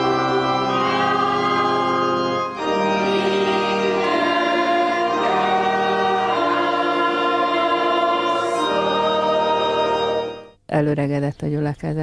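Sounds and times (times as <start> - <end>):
congregation singing a hymn: 0.0 - 10.5
organ accompaniment: 0.0 - 10.6.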